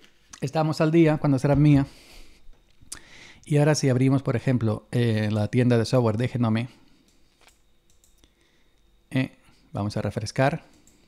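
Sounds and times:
faint computer mouse clicks: 0:07.0 - 0:08.3.

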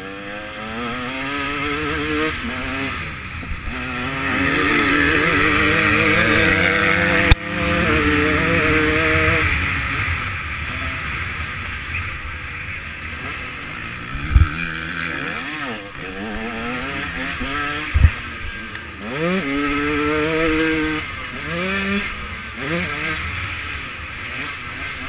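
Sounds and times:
motocross engine revving: 0:00.0 - 0:25.0.

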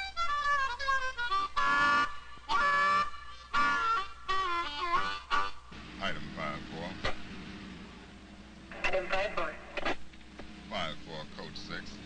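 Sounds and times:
speech over two-way radio: 0:08.8 - 0:09.6.

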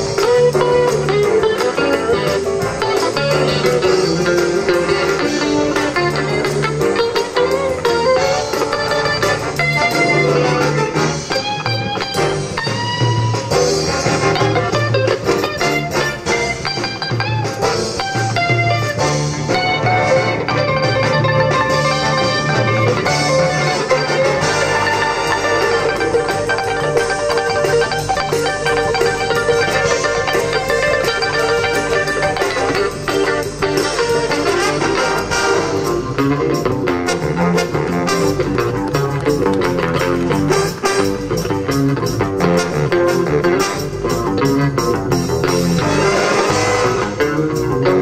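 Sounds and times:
big band playing jazz: 0:00.0 - 0:48.0
electric guitar: 0:00.0 - 0:48.0
steady bass line: 0:00.0 - 0:48.0.

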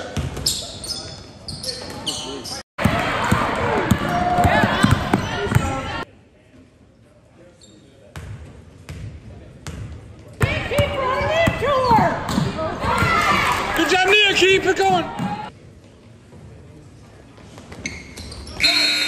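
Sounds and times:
voices of players and spectators: 0:00.0 - 0:19.0
basketball bouncing on wooden court: 0:02.8 - 0:05.9, 0:08.2 - 0:13.2.

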